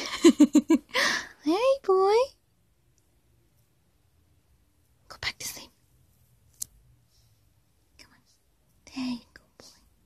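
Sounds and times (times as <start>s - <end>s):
person whispering: 5.1s - 5.8s, 7.9s - 10.0s.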